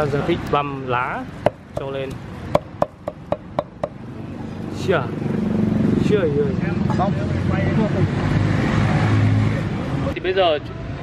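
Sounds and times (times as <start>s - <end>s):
passing vehicle engine: 0.0s - 11.0s
cleaver chopping on wooden board: 2.5s - 4.0s.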